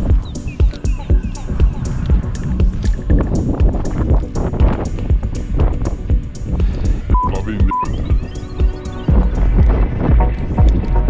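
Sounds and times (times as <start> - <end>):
background music with steady beat: 0.0 - 11.0
censor bleeps: 7.1 - 9.3.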